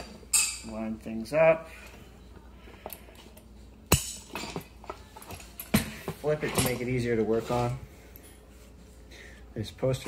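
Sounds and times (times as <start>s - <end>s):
metal parts clinking: 2.8s - 8.4s.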